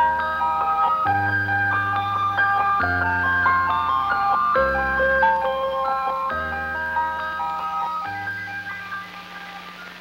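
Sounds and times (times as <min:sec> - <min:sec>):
steady hiss: 0:00.1 - 0:10.0.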